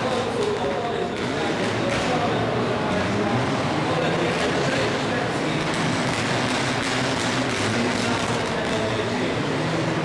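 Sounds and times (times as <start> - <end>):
rally car engine running hard: 0.0 - 10.0.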